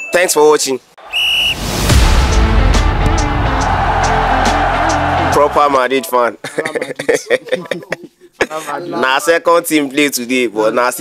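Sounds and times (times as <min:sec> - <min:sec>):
whistle blast: 0:01.0 - 0:05.3
music with deep bass: 0:01.8 - 0:05.6.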